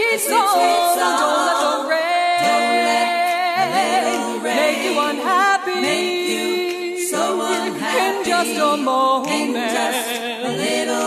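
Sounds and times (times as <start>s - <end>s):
female a cappella group singing: 0.0s - 11.0s.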